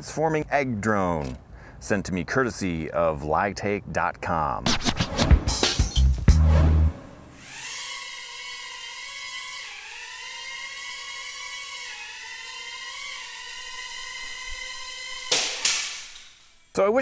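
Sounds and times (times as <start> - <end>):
mini drone propellers whining: 7.3 - 16.8.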